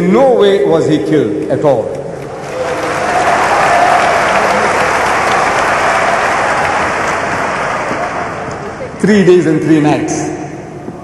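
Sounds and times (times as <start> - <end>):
audience applauding: 2.2 - 8.8.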